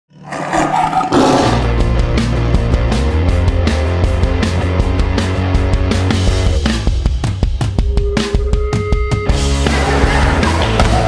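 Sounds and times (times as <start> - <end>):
lion roaring: 0.1 - 1.8
music with steady bass: 1.4 - 11.0.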